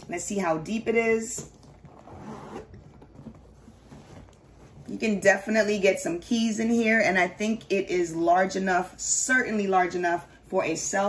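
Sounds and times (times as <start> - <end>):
zipper pulled open: 1.5 - 4.4
faint rustling: 1.5 - 5.3.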